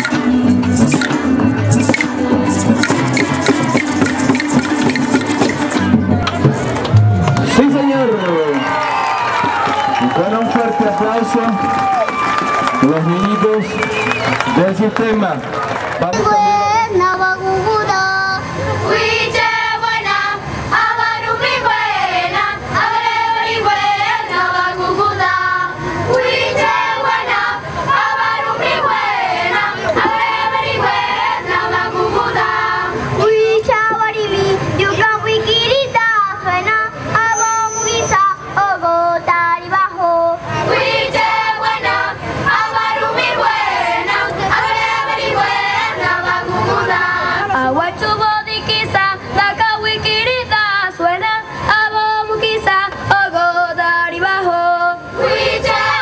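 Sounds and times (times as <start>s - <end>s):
short sharp accompaniment strokes: 0.0s - 7.7s
children's choir singing: 16.2s - 56.0s.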